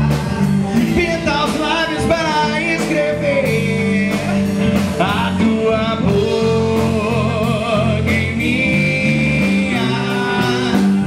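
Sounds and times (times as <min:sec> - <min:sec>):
person singing: 0:00.0 - 0:11.0
pop-rock band playing: 0:00.0 - 0:11.0
steady drum beat: 0:00.0 - 0:11.0.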